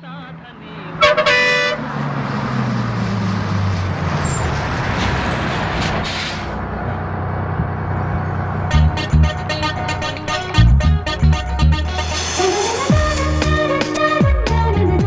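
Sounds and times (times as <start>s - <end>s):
road noise: 0.0s - 14.2s
diesel engine drone: 0.0s - 15.0s
bus horn blast: 0.9s - 2.0s, 8.7s - 14.2s.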